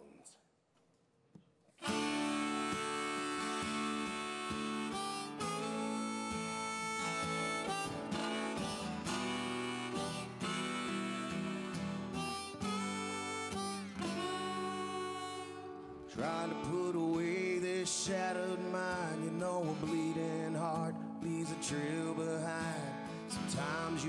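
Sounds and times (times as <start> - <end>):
acoustic guitars: 1.8 - 24.0
harmonica melody: 1.8 - 24.0.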